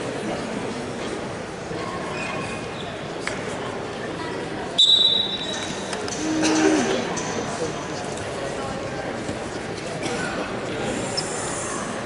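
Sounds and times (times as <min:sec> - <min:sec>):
murmur of a gym: 0:00.0 - 0:12.0
referee's whistle blast: 0:04.8 - 0:05.6.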